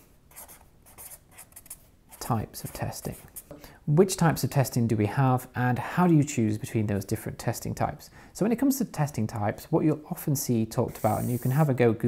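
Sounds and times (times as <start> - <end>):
marker writing on paper: 0.3 - 3.6, 11.0 - 11.7.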